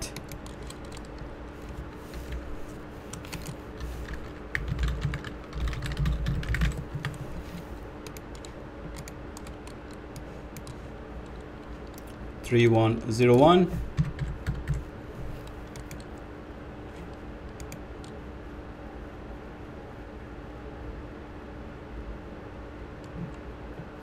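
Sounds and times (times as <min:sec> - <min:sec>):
typing on computer keyboard: 0:00.0 - 0:01.2, 0:03.1 - 0:07.2, 0:08.0 - 0:10.8, 0:13.9 - 0:14.8, 0:15.4 - 0:16.2
faint steady hum: 0:00.0 - 0:24.0.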